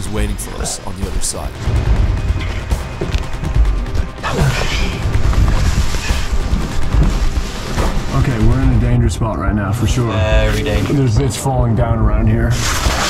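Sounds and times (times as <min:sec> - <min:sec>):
background music with low rumble: 0:00.0 - 0:13.0.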